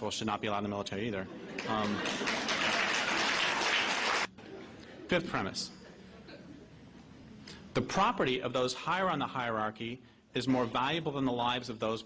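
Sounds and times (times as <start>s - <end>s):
audience laughing: 1.3s - 6.8s
audience clapping: 1.6s - 4.3s.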